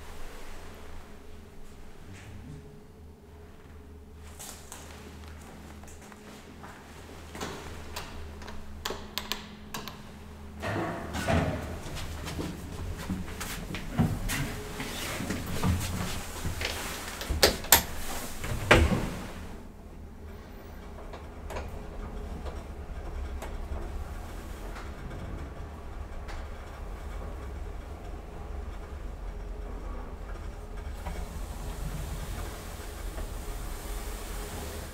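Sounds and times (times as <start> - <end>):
low steady hum: 0.0 - 34.9.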